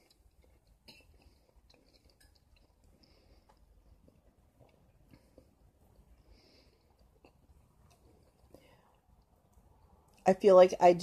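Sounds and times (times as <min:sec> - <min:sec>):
soft chewing mouth clicks: 0:00.0 - 0:10.2.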